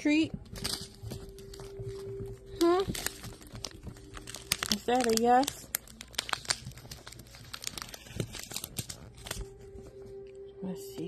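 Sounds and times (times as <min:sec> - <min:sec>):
crinkly paper or plastic rustling: 0:00.4 - 0:10.4.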